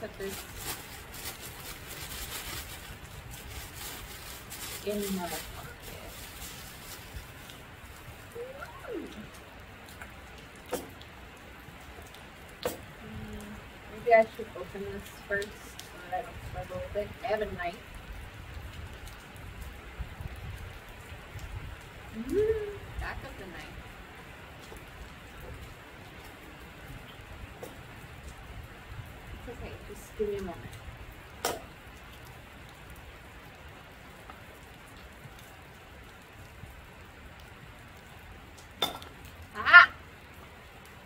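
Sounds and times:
heavy rain on metal roof: 0.0 - 41.0.

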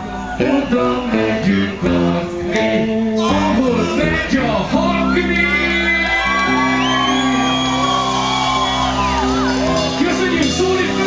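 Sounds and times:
high shouted vocal note: 0.0 - 9.8
live rock band music: 0.0 - 11.0.

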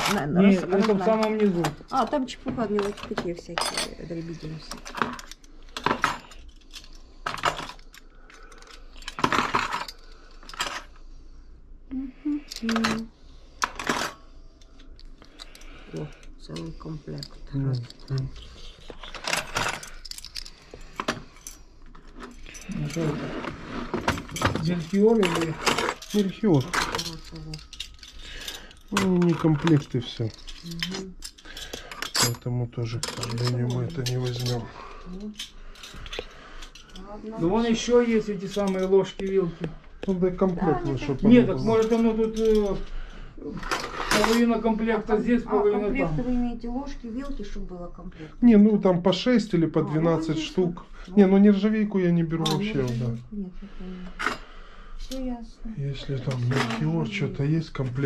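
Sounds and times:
metal cutlery clinking: 24.0 - 39.5, 41.3 - 42.8, 43.6 - 44.6, 52.4 - 53.2.

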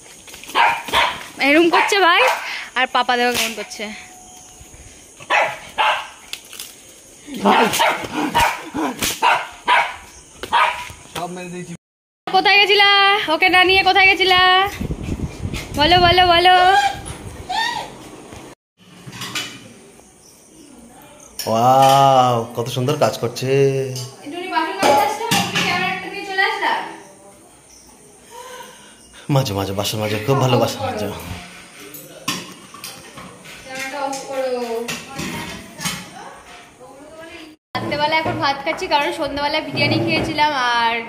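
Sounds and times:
dog barking: 0.5 - 2.5, 5.2 - 6.2, 7.4 - 11.0.

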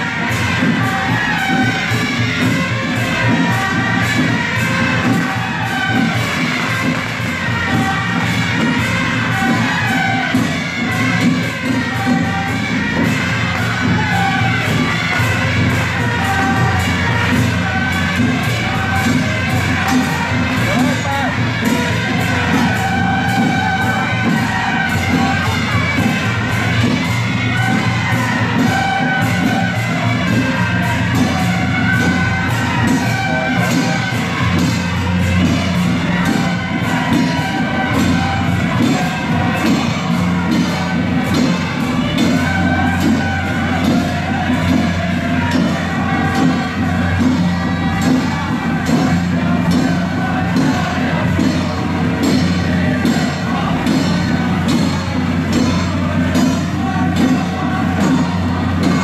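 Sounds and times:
crowd noise: 0.0 - 59.0
fast steady percussion beat: 0.0 - 59.0.

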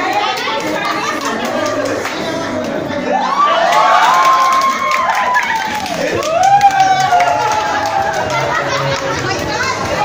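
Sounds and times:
group of people cheering: 3.0 - 9.1.

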